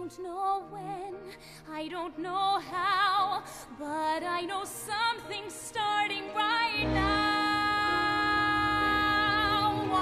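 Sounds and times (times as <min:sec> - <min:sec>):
soft musical accompaniment: 0:00.0 - 0:10.0.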